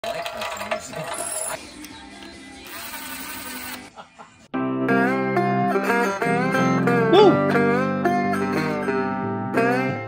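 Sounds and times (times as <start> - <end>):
metallic grinding with clicks: 0.0 - 1.6
laughter: 3.9 - 4.5.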